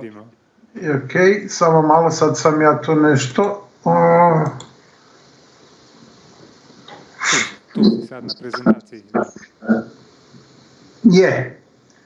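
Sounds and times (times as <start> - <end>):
murmured vocal sounds: 0.0 - 0.9, 7.8 - 9.9.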